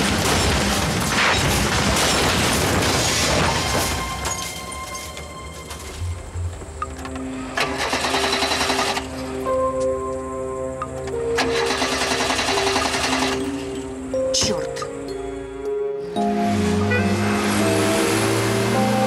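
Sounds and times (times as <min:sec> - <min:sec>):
background music with sustained notes: 0:00.0 - 0:19.0
car starter motor cranking: 0:06.8 - 0:09.3, 0:11.2 - 0:13.7.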